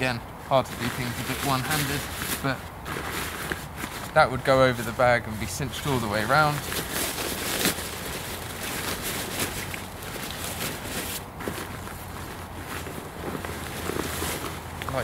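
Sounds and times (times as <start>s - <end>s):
nylon rain cover rustling: 0.4s - 15.0s.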